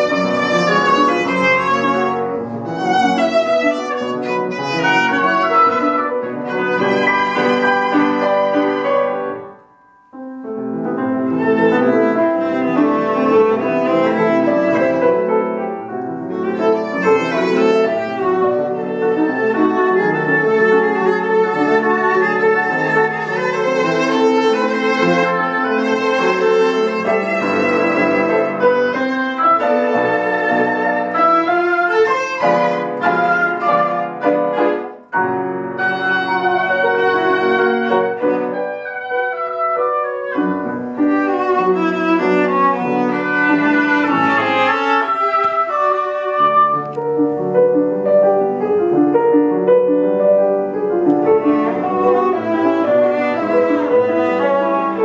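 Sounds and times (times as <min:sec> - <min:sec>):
chamber trio playing classical music: 0:00.0 - 0:55.0.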